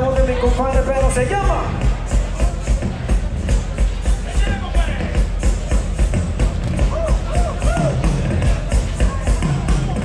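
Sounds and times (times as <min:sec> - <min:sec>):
band playing dance music: 0:00.0 - 0:10.0.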